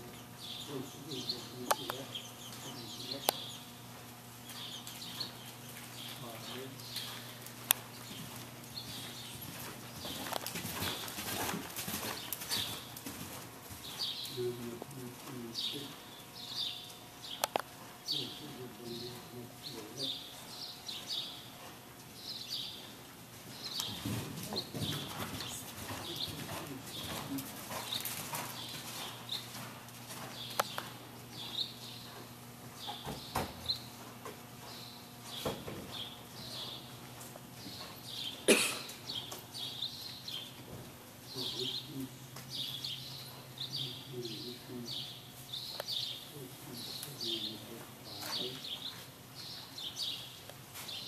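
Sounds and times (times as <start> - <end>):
horse hoofbeats on soft ground: 3.9 - 16.0, 18.2 - 38.3.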